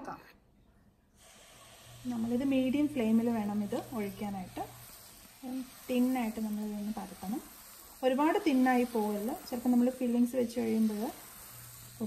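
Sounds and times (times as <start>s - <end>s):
batter sizzling on hot pan: 1.2s - 12.0s.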